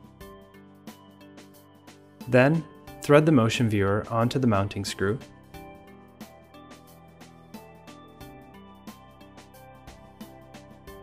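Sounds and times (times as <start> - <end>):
soft instrumental music: 0.0 - 11.0
man narrating: 2.3 - 5.2.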